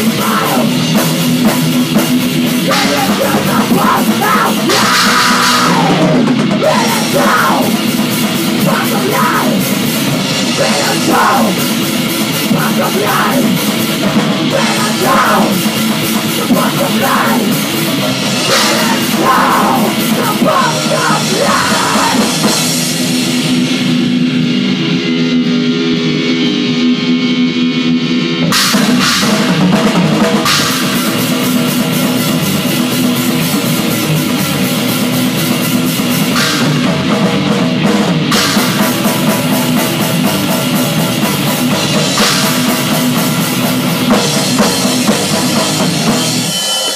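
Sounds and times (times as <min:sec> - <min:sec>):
person shouting vocals: 0:00.0 - 0:00.8, 0:02.7 - 0:07.8, 0:08.6 - 0:09.7, 0:10.6 - 0:11.7, 0:12.5 - 0:13.6, 0:14.5 - 0:15.7, 0:16.4 - 0:17.6, 0:18.5 - 0:22.4
bass guitar: 0:00.0 - 0:46.9
distorted electric guitars: 0:00.0 - 0:46.9
drum kit: 0:00.0 - 0:46.9.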